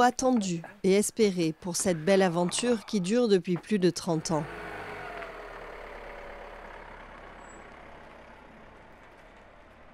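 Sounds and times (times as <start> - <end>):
minibus engine rumbling: 0.0 - 9.9.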